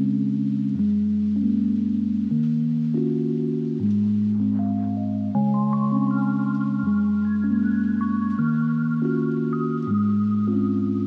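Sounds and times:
ambient synthesizer chords: 0:00.0 - 0:11.0
high single synth notes: 0:04.2 - 0:11.0.

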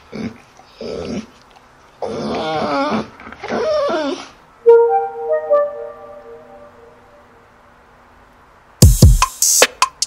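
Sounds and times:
dog whining: 0:02.1 - 0:04.4.

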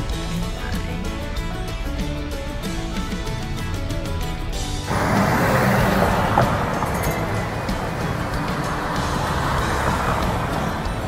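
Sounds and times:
background music: 0:00.0 - 0:11.0
passing cars rushing: 0:04.8 - 0:11.0.

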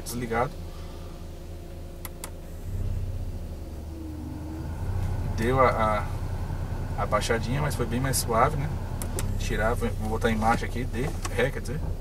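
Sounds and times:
car engine idling: 0:00.0 - 0:12.0
switch clicks: 0:02.0 - 0:02.4.

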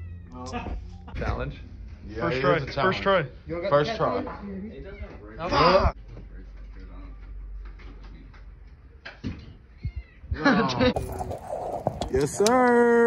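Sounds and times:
cat meowing: 0:09.8 - 0:10.4.

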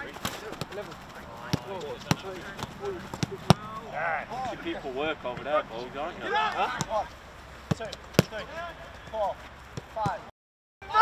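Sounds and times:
football kicks thudding: 0:00.0 - 0:03.9, 0:07.7 - 0:08.4
players shouting: 0:00.0 - 0:09.4.

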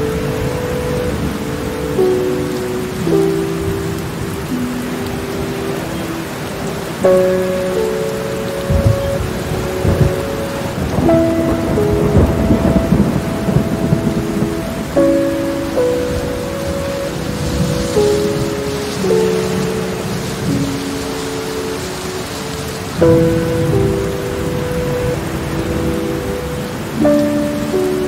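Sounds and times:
heavy rain: 0:00.0 - 0:28.0
slow sustained music notes: 0:00.0 - 0:28.0
rumbling thunder: 0:08.6 - 0:28.0.

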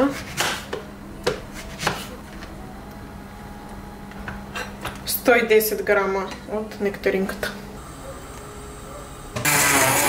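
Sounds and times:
knife chopping on plastic board: 0:00.2 - 0:02.1.

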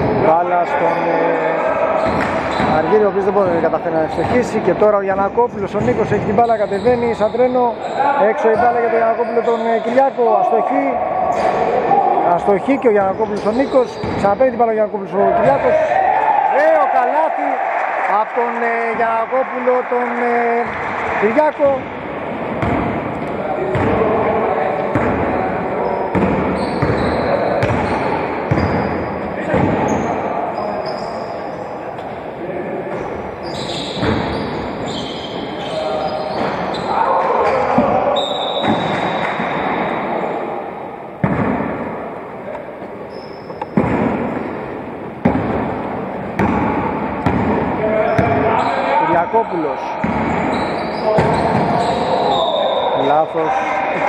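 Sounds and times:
players' voices: 0:00.0 - 0:54.0
basketball bouncing on wooden floor: 0:22.6 - 0:23.0, 0:26.1 - 0:28.9, 0:46.4 - 0:48.4, 0:50.0 - 0:50.4.

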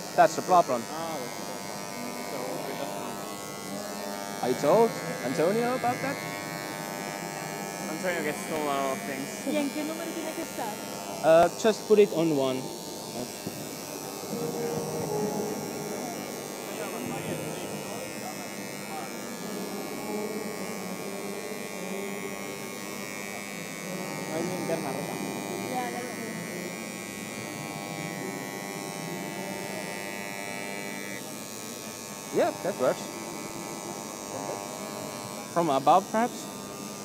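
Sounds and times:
engraving pens buzzing: 0:00.0 - 0:37.0
faint voices: 0:00.1 - 0:37.0.

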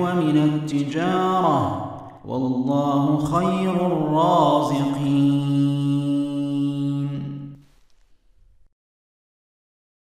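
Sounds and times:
man reciting held vowel: 0:00.0 - 0:07.6.

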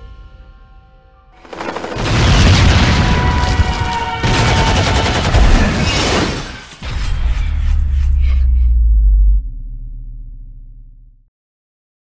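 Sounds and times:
dramatic music: 0:00.0 - 0:11.0
explosions and gunfire: 0:01.4 - 0:08.2.

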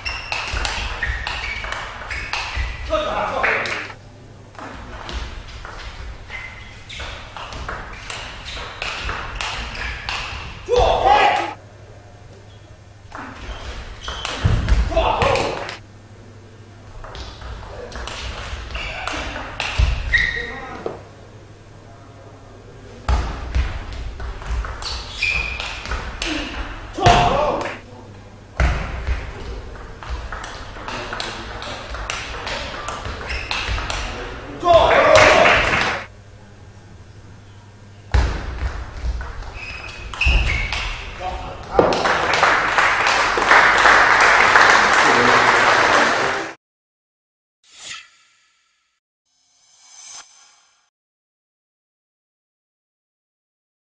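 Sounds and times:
person shouting: 0:10.7 - 0:11.6.

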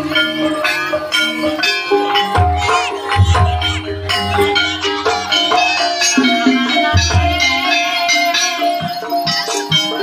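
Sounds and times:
gamelan gongs struck: 0:00.0 - 0:10.0.

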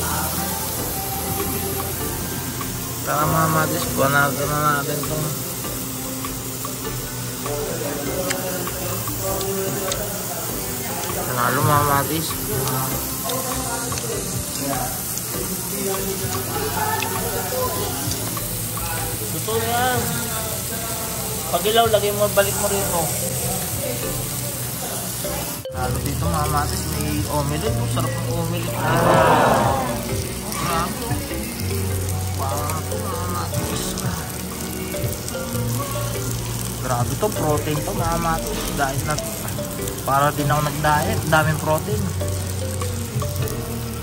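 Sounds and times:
background music: 0:00.0 - 0:44.0
pork sizzling on grill plate: 0:00.0 - 0:44.0.

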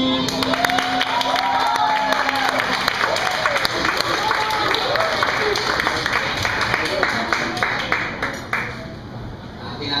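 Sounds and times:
audience applause: 0:00.2 - 0:08.9.

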